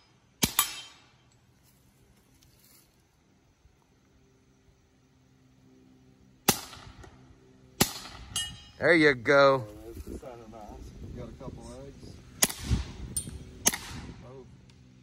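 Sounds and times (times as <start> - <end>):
suppressed pistol shots: 0.4 - 1.1, 6.4 - 7.1, 7.8 - 8.4, 12.4 - 12.9, 13.6 - 14.1.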